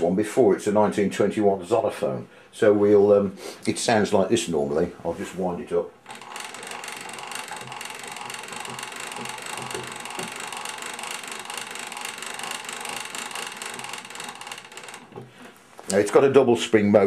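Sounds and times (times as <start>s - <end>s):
gramophone crank ratcheting clicks: 6.0s - 15.4s.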